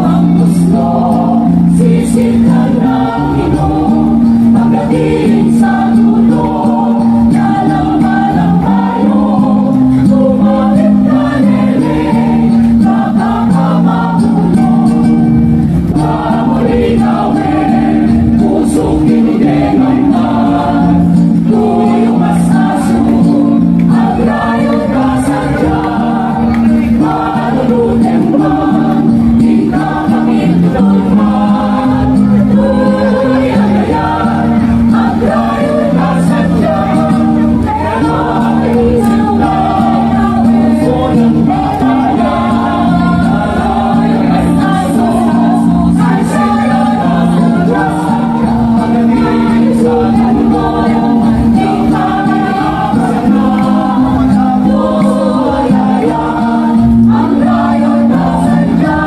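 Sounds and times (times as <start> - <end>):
mixed choir singing in harmony: 0.0 - 59.0.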